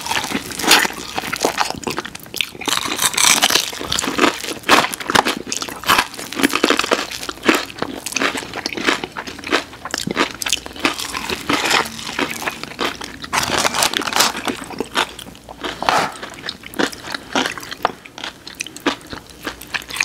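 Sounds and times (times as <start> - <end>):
chewing and crunching fried chicken: 0.0 - 20.0.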